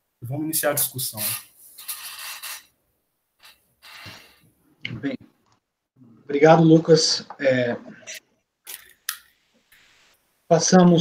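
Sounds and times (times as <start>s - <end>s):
breathy hisses on microphone: 0.8s - 2.7s.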